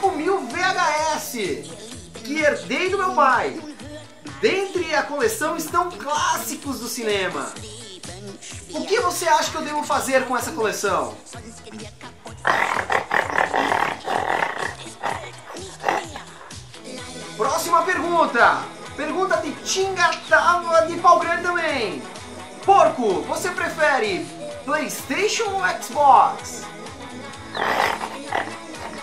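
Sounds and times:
background music: 0.0 - 29.0
pig-like grunting: 12.3 - 16.8, 27.5 - 29.0.

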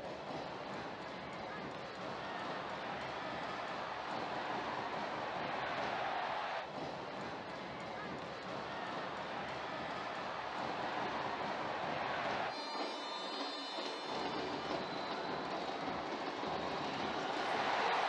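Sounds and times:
stadium crowd din: 0.0 - 18.0.

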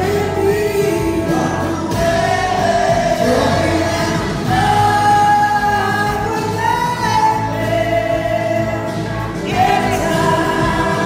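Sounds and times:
drums: 0.0 - 11.0
electric guitars: 0.0 - 11.0
woman singing: 0.0 - 11.0.

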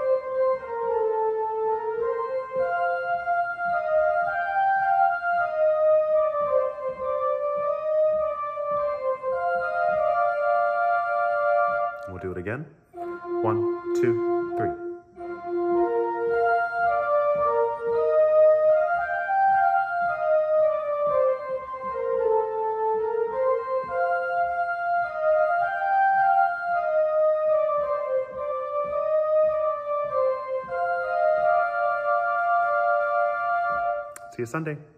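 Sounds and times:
keyboard melody in held notes: 0.0 - 34.5.

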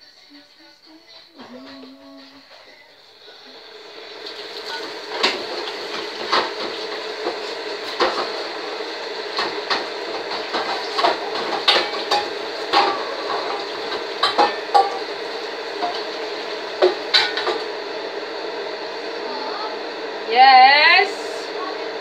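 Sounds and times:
steady background hum: 0.0 - 22.0
dishes and cutlery clinking: 14.2 - 15.1.

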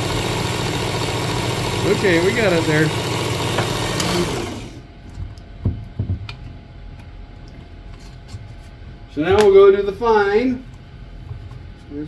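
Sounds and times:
sharpener belt motor spinning down: 0.0 - 4.8.

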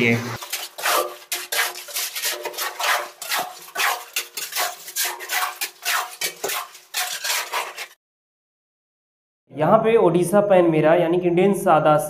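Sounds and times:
hand tool scraping wet mortar: 0.4 - 8.0.

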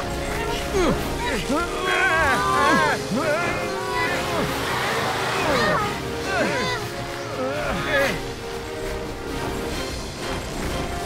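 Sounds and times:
background music: 0.0 - 11.0
cartoon voices grunting: 1.8 - 8.2.

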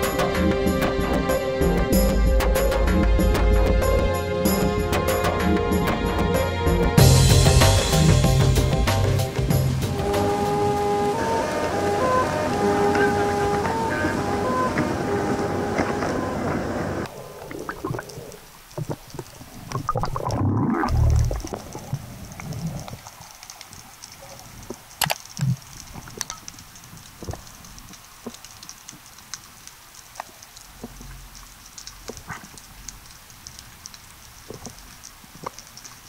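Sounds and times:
background music: 0.0 - 16.5
faint underwater crackle: 11.1 - 36.0
underwater sharp clicks: 17.4 - 36.0.

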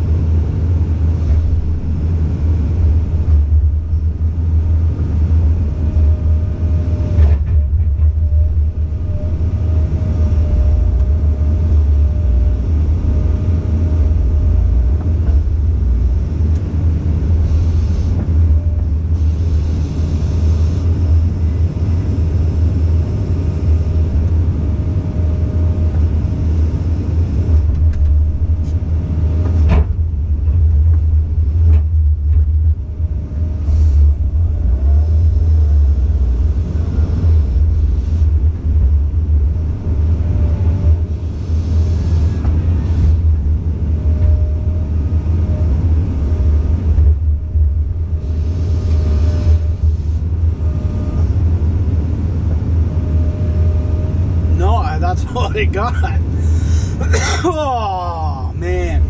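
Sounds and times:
excavator diesel engine rumbling: 0.0 - 59.0
faint whine: 0.0 - 59.0.

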